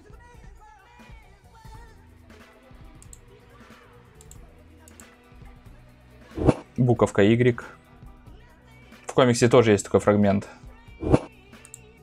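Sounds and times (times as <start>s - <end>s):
faint trailer music: 1.7s - 8.4s, 10.8s - 11.9s
light clicks: 4.2s - 5.1s, 11.6s - 11.9s.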